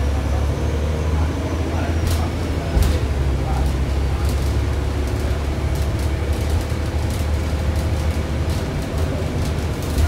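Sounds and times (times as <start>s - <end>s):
bus engine drone: 0.0s - 10.0s
road noise: 0.0s - 10.0s.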